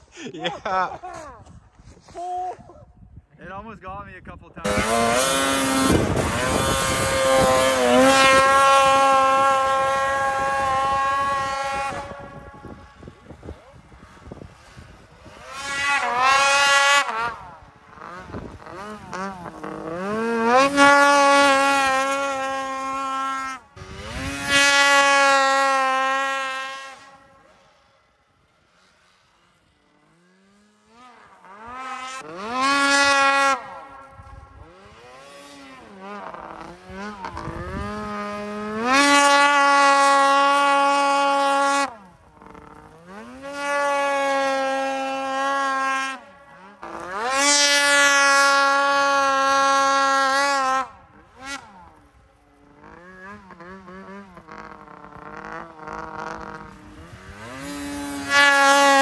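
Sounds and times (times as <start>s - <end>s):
snowmobile engine revving: 0.0s - 2.5s, 3.4s - 59.0s.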